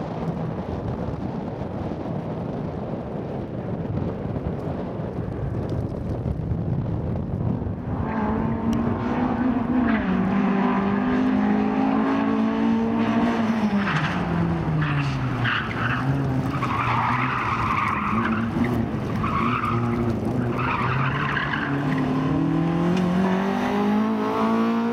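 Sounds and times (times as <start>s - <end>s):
rally car engine revving: 7.8s - 24.9s.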